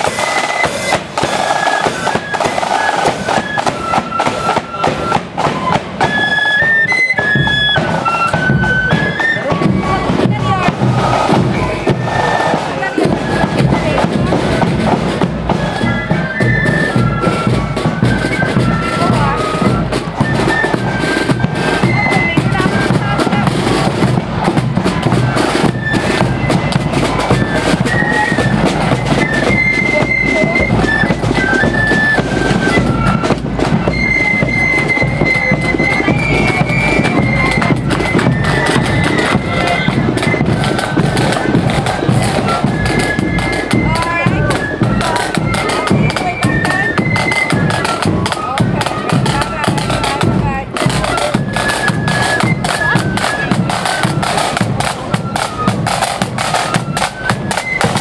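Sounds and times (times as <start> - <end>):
flutes playing melody: 0.0 - 58.0
steady drumbeats: 0.0 - 58.0.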